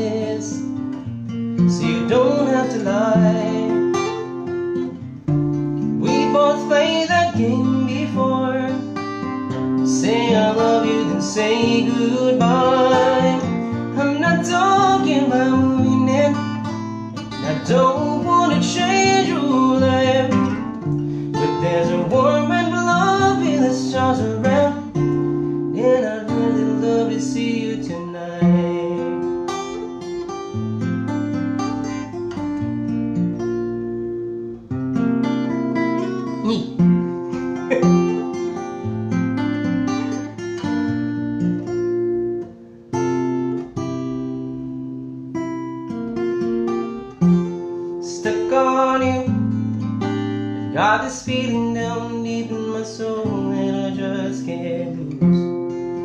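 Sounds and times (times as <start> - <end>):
man singing: 0.0 - 0.9, 1.6 - 4.6, 5.8 - 29.8, 36.4 - 36.8, 48.0 - 49.6, 50.6 - 55.3
acoustic guitar strummed and picked: 0.0 - 56.0.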